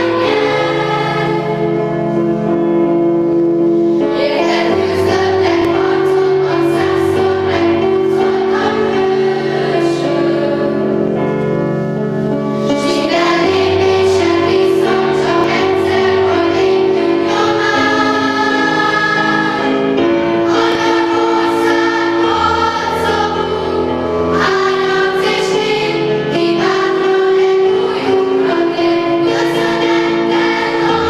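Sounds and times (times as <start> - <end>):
children's choir singing: 0.0 - 2.1, 4.0 - 11.0, 12.6 - 31.0.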